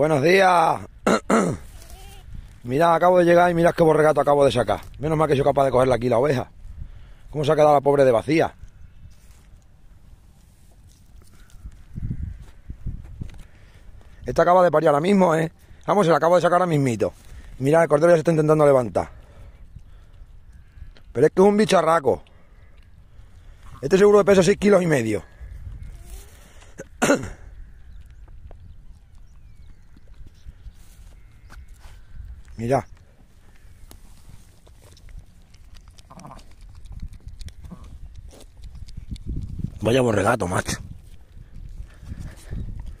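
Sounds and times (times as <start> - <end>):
sheep bleating: 1.7 - 2.3
sheep licking lamb: 33.0 - 39.8.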